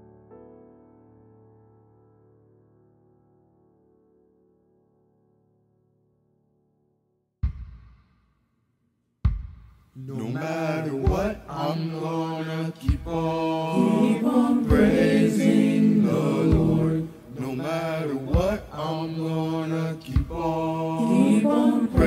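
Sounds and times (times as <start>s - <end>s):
gospel choir singing in harmony: 10.0s - 22.0s.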